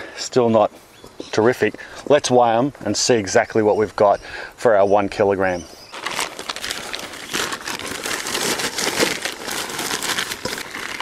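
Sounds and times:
plastic bag crinkling: 0:05.9 - 0:11.0.

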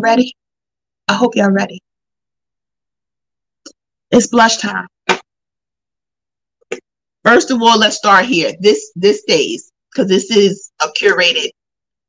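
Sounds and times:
woman speaking: 0:00.0 - 0:00.3, 0:01.1 - 0:01.8, 0:04.1 - 0:04.9, 0:07.3 - 0:11.5.

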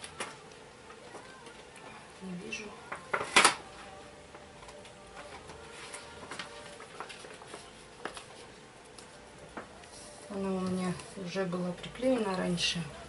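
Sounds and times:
plastic film rustling: 0:00.0 - 0:12.2.

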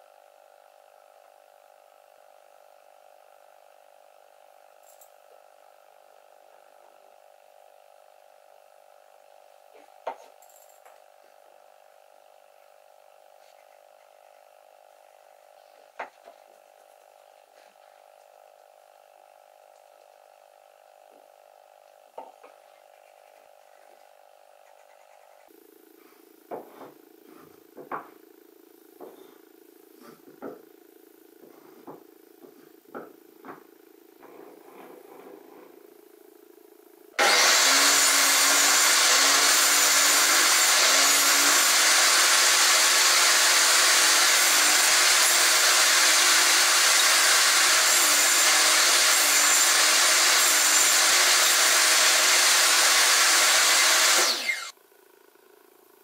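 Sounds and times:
wooden taps on a bench: 0:27.8 - 0:28.2
bandsaw running: 0:37.2 - 0:54.8.

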